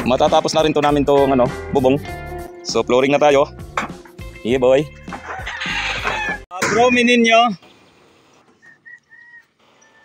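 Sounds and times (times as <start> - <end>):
faint bird chirps: 7.6 - 10.0.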